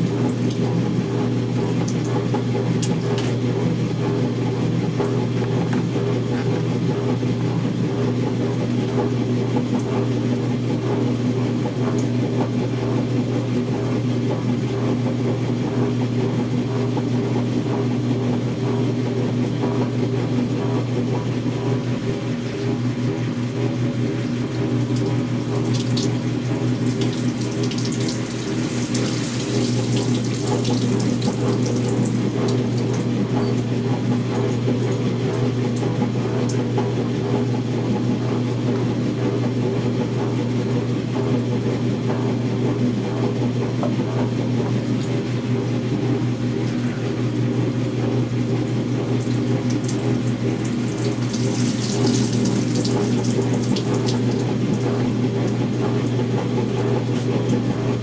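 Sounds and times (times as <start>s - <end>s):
water splashing into tub: 0.0s - 3.4s, 23.6s - 33.3s, 48.5s - 56.1s
electric motor hum: 21.7s - 34.2s.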